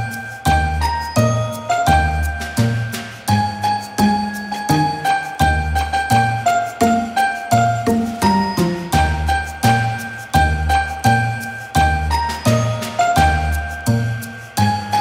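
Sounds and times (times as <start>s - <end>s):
bell-like melody over a beat: 0.0s - 15.0s.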